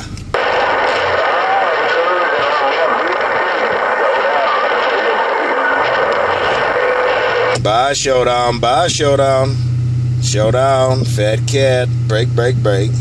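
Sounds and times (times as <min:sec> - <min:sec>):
faint garbled radio voices: 0:00.0 - 0:09.6
radio static hiss: 0:00.0 - 0:13.0.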